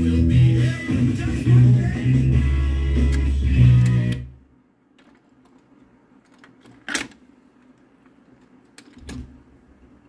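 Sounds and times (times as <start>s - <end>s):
record player playing music: 0.0s - 4.4s.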